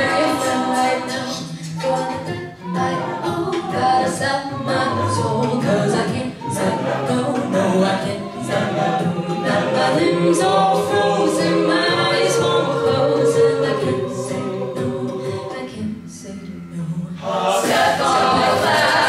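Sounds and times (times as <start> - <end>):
vocal percussion beat: 0.0 - 15.9, 17.1 - 19.0
a cappella group singing: 0.0 - 19.0.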